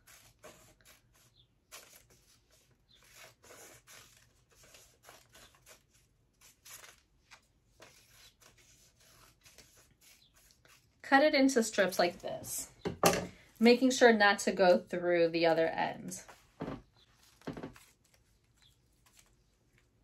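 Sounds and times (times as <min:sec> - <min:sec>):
scissors snipping paper: 0:00.0 - 0:11.0
paper rustling: 0:01.7 - 0:10.9, 0:16.2 - 0:20.0.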